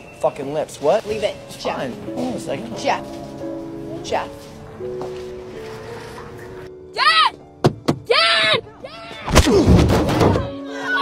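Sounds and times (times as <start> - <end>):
high-pitched shout: 7.0 - 7.4, 8.1 - 9.3.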